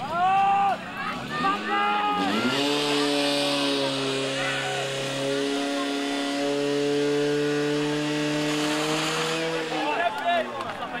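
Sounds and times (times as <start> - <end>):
people shouting: 0.0 - 5.8
pump engine running at high revs: 1.6 - 10.2.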